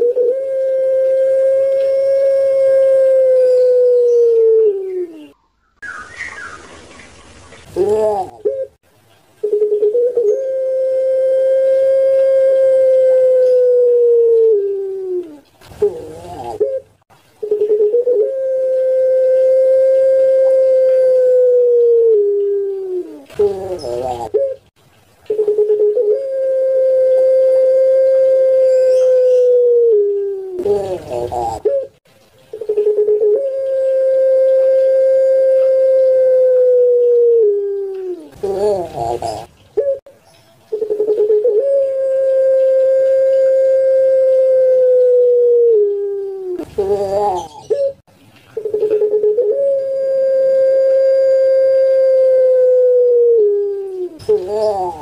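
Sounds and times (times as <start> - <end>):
dove cooing: 0.0 - 5.4, 7.6 - 8.8, 9.4 - 24.7, 25.3 - 40.1, 40.7 - 55.0.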